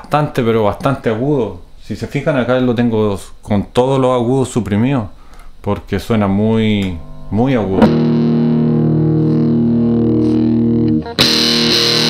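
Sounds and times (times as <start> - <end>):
distorted electric guitar chord: 6.8 - 12.0.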